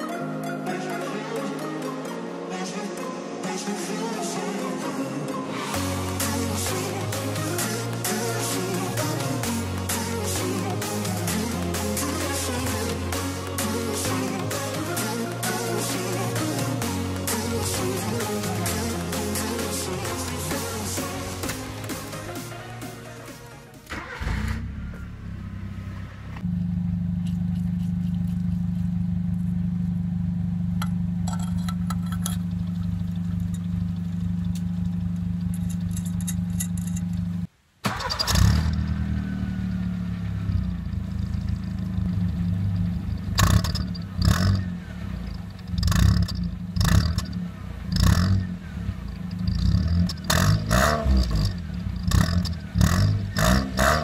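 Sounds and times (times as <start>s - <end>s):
car engine starting: 5.6s - 54.0s
car engine idling: 23.7s - 54.0s
engine revving with turbo whistle: 38.3s - 54.0s.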